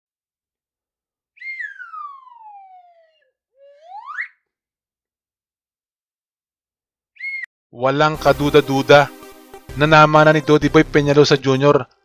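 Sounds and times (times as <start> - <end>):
sliding whistle tone: 1.4 - 4.5, 7.2 - 7.5.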